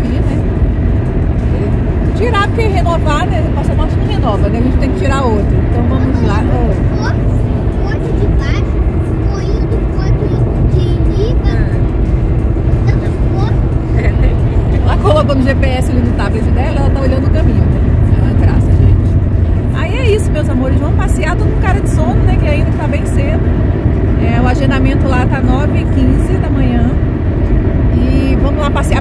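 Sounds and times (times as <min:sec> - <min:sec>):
people talking: 0:00.0 - 0:00.5, 0:01.5 - 0:11.9, 0:12.8 - 0:19.1, 0:19.8 - 0:23.4, 0:24.2 - 0:27.0, 0:27.9 - 0:29.0
car road and engine rumble: 0:00.0 - 0:29.0.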